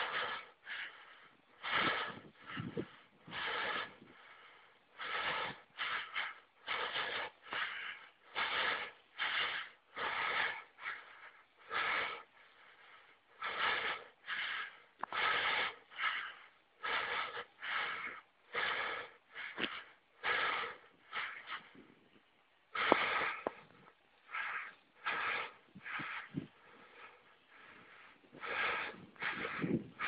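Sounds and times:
heavy rhythmic breathing: 0.0s - 30.0s.

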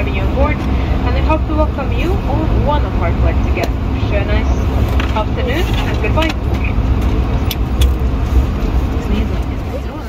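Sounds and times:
airliner cabin rumble: 0.0s - 10.0s.

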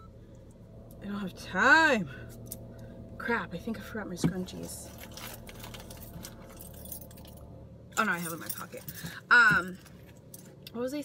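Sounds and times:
rustling of rummaging: 4.2s - 7.4s
keys jingling: 4.9s - 7.4s, 8.1s - 9.1s.

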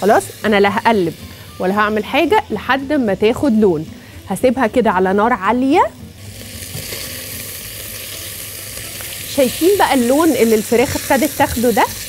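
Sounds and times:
chicken sizzling in hot oil: 0.0s - 3.9s, 6.1s - 12.0s.

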